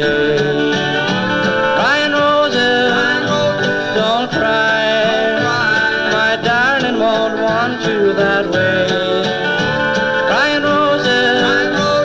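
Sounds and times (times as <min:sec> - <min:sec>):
country band on a record: 0:00.0 - 0:12.0.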